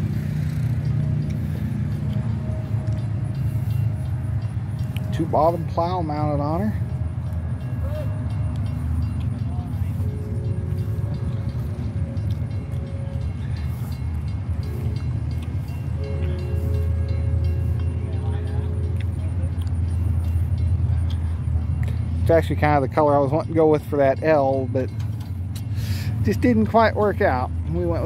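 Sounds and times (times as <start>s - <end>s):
steady held tones: 0.0s - 25.6s
low outdoor rumble: 0.0s - 28.0s.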